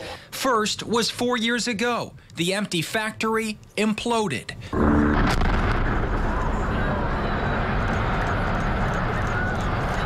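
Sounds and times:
sharp explosive crack: 4.8 - 6.8
rumble of collapsing structure: 4.8 - 8.7.

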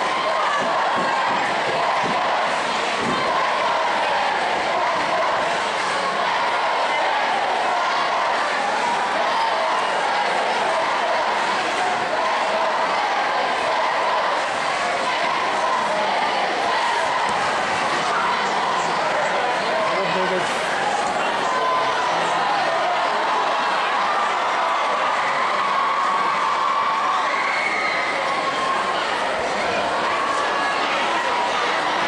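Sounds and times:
crowd shouting and cheering: 0.0 - 32.0.

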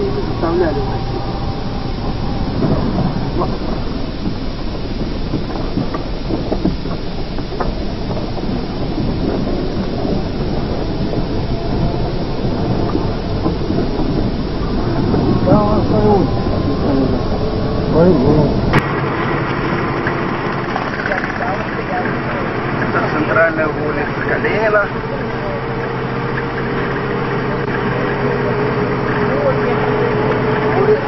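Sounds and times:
people talking: 0.0 - 18.8, 20.7 - 31.0
car engine and road noise: 0.0 - 31.0
steady tone: 0.0 - 31.0.

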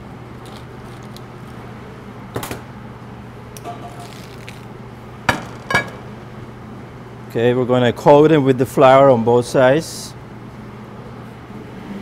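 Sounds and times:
low kitchen hum: 0.0 - 12.0
kitchenware knocking and clinking: 5.3 - 6.0.

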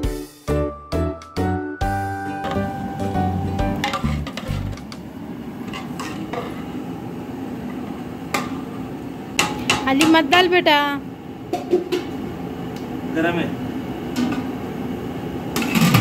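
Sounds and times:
background music: 0.0 - 4.7.

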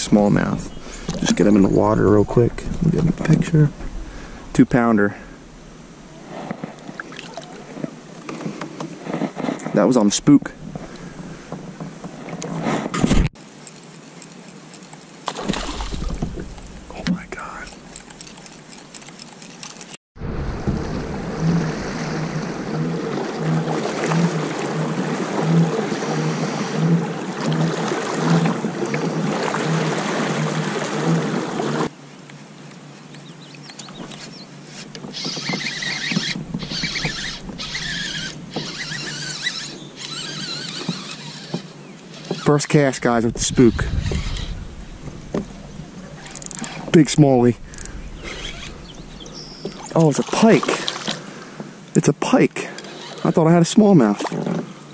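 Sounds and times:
water noise around kayak hull: 0.0 - 54.9.

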